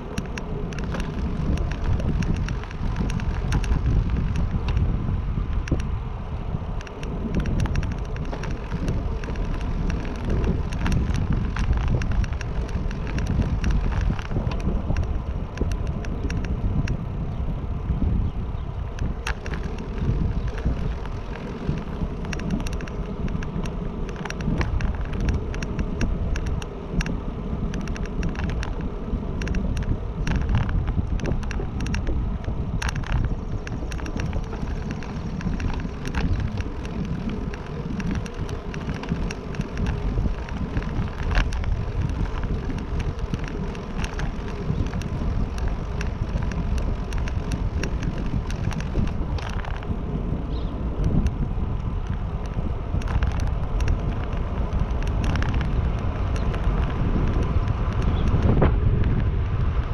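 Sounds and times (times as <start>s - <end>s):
small clicks and rattles: 0.0s - 6.0s, 6.7s - 59.9s
low rumble of ride: 0.0s - 59.9s
wind buffeting microphone: 0.0s - 59.9s.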